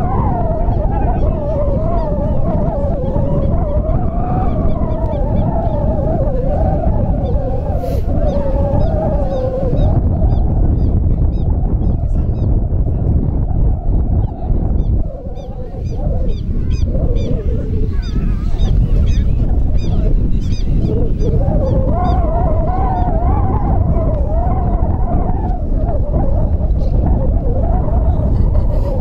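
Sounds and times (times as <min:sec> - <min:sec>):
long wavering pitched sound: 0:00.0 - 0:12.2, 0:13.4 - 0:29.0
wind rumbling on microphone: 0:00.0 - 0:29.0.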